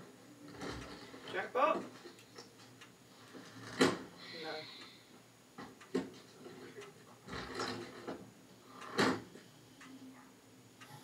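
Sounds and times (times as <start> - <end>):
voices from television drama: 0.6 - 5.2.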